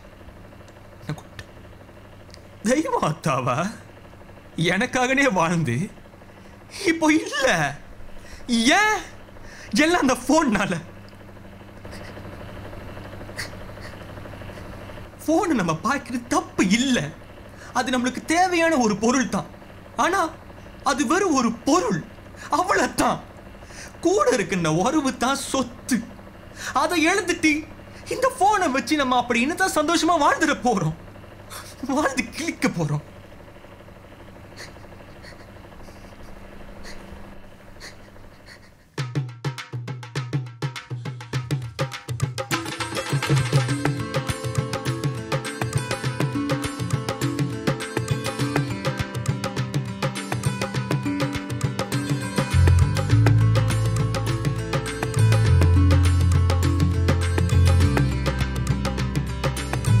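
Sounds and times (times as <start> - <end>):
steady low hum: 0.0 - 39.0, 42.5 - 60.0.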